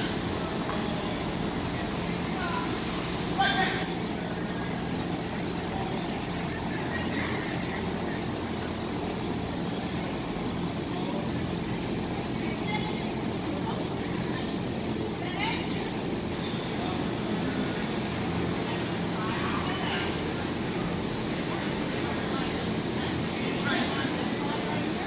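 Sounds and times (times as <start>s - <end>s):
distant indistinct voices: 0.0s - 25.0s
low hum of a large hall: 0.0s - 25.0s.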